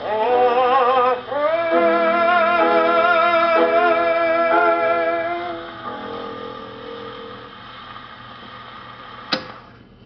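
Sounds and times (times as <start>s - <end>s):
record surface hiss: 0.0s - 10.0s.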